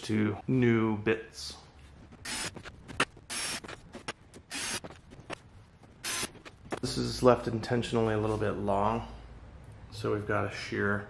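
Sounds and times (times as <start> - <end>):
cordless drill drilling metal: 2.2 - 2.5, 3.3 - 3.6, 4.5 - 4.8, 6.0 - 6.4.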